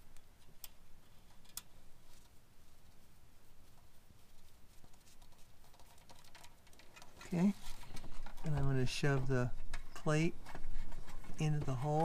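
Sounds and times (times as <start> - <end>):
man talking: 7.2 - 7.6, 8.4 - 10.4, 11.4 - 12.0.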